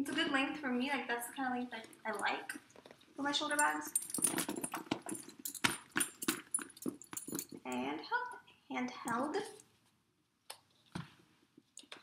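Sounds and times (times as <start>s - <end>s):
metal clasps and rings clinking: 1.7s - 8.4s, 9.0s - 9.7s.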